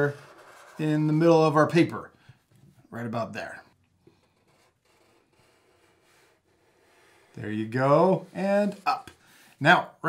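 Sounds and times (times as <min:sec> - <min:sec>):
marker scratching on paper: 0:00.0 - 0:01.1, 0:04.2 - 0:07.4.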